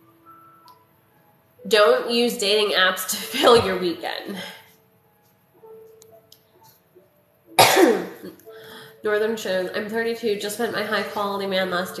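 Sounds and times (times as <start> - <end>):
woman coughing: 7.6 - 8.4.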